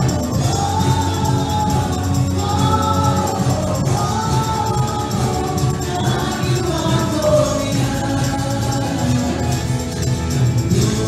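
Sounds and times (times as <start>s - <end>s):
band with steady beat: 0.0s - 11.0s
voices singing gospel song: 0.0s - 11.0s.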